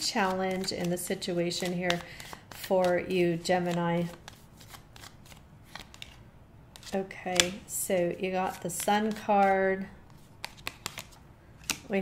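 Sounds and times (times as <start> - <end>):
cards being shuffled: 0.0 - 7.6, 8.4 - 12.0.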